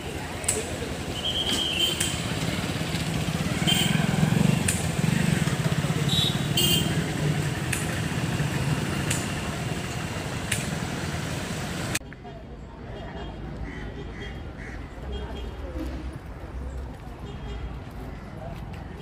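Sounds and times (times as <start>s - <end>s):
engine running: 0.0s - 12.0s
clicks: 1.4s - 2.2s, 4.6s - 4.9s, 7.6s - 8.0s, 10.4s - 10.8s.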